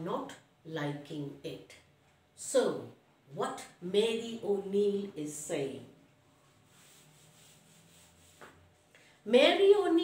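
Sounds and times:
chalk rubbing on blackboard: 0:06.3 - 0:08.9.

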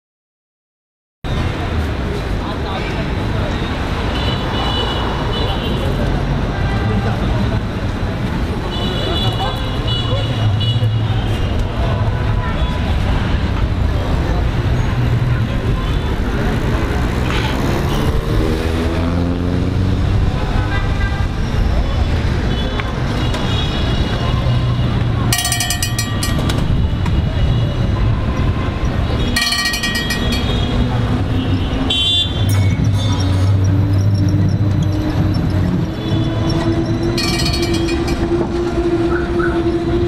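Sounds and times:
street traffic: 0:01.2 - 0:40.0
electric tram humming and whining: 0:32.5 - 0:40.0.

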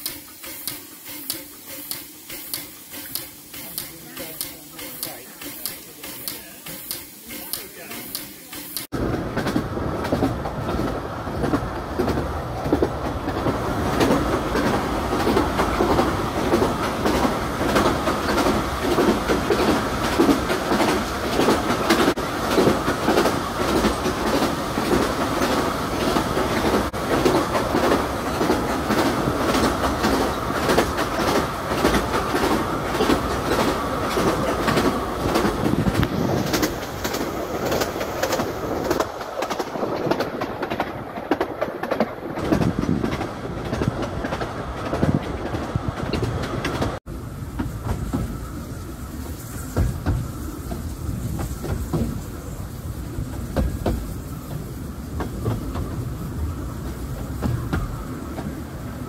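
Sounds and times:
wheel clicks on track: 0:00.0 - 0:47.0
train running noise: 0:00.0 - 0:59.0.

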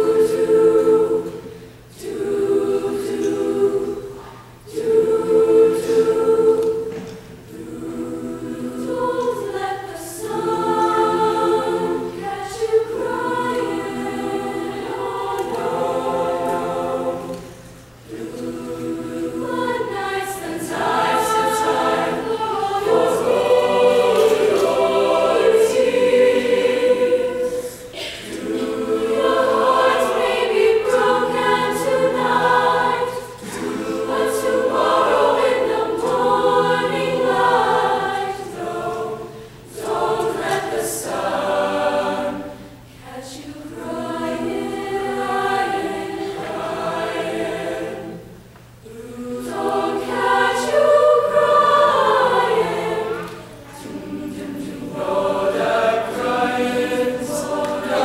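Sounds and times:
choir singing in harmony: 0:00.0 - 0:58.0.

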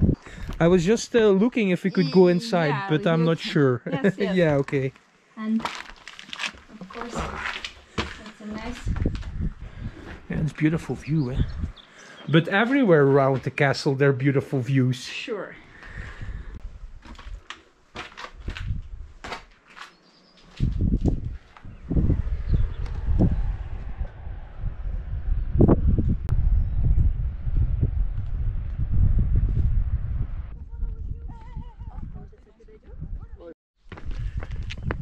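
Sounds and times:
wind rumbling on microphone: 0:00.0 - 0:01.3, 0:06.9 - 0:11.9, 0:15.8 - 0:17.5, 0:18.2 - 0:19.3, 0:20.5 - 0:35.0
footsteps on stony ground: 0:04.3 - 0:09.4, 0:16.9 - 0:21.6, 0:33.8 - 0:35.0.

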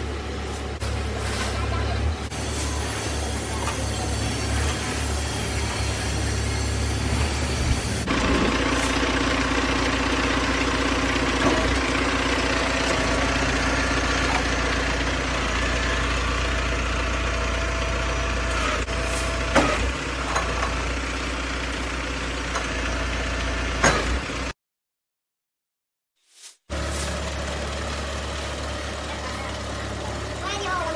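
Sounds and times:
truck engine running: 0:00.0 - 0:24.5, 0:26.7 - 0:30.9.

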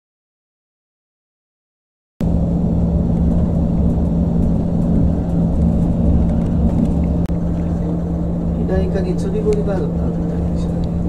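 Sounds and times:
constant hum: 0:02.2 - 0:11.0
vehicle engine and road rumble: 0:02.2 - 0:11.0.

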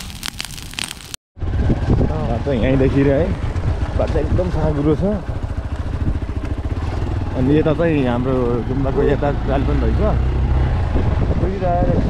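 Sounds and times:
motorcycle engine running: 0:01.4 - 0:12.0.

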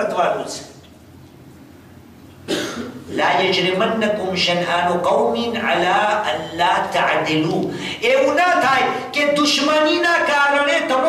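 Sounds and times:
person coughing: 0:02.4 - 0:03.2.

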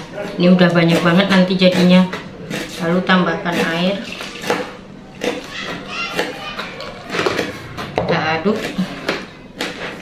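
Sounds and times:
child's voice: 0:05.4 - 0:07.2.

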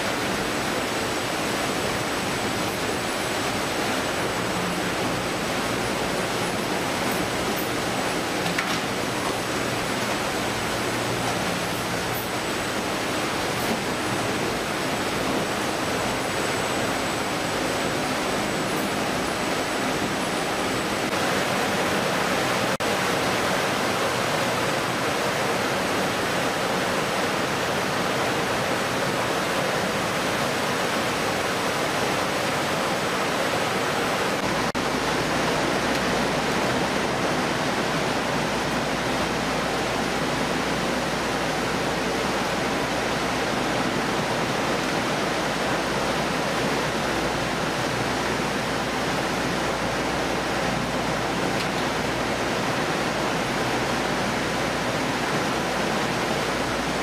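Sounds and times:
faint high whine: 0:00.0 - 0:25.4
fish processing machinery: 0:00.0 - 0:57.0.

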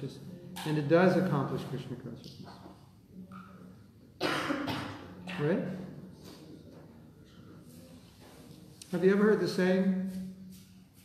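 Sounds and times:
person coughing: 0:04.2 - 0:05.6.

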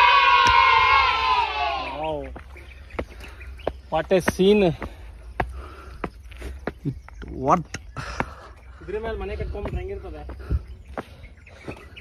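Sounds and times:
group of people yelling: 0:00.0 - 0:02.1.

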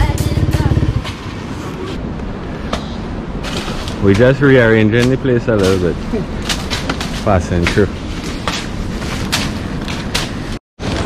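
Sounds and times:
dry palm leaves rustling: 0:03.2 - 0:11.0
leaves snapping: 0:03.4 - 0:07.9.

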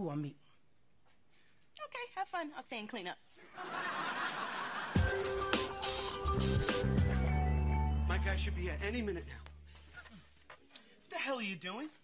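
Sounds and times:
studio audience laughing: 0:03.4 - 0:05.9.

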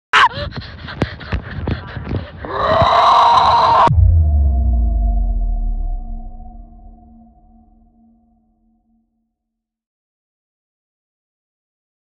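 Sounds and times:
deep bass boom: 0:03.8 - 0:08.6.

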